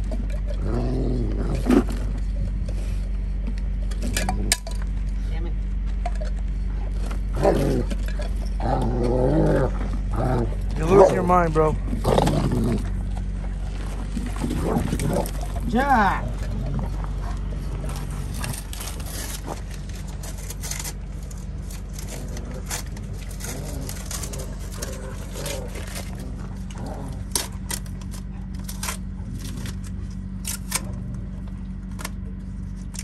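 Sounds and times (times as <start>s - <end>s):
dog growling and whining: 0.0s - 2.4s, 7.2s - 19.6s, 21.9s - 29.8s
steady low hum: 0.0s - 33.0s.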